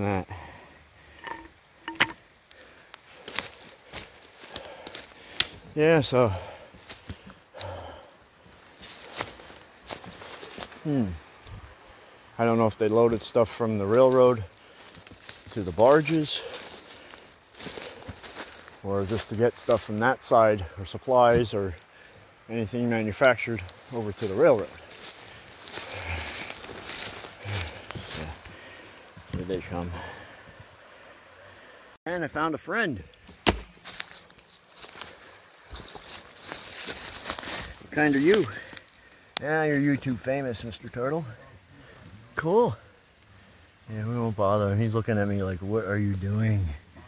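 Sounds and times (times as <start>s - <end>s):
low breathy sound: 6.2s - 9.3s, 24.8s - 32.0s
footsteps through dry leaves: 8.6s - 10.8s, 14.8s - 19.9s, 23.7s - 28.4s, 33.7s - 38.9s.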